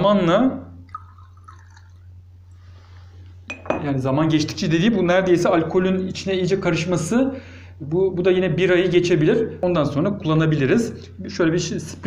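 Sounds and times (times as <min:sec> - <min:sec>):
steady low hum: 0:00.0 - 0:12.0
liquid trickling into glass jar: 0:00.8 - 0:02.2.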